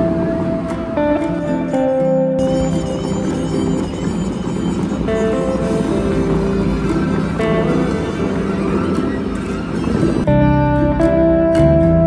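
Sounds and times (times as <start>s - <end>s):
faint music: 0.0s - 12.0s.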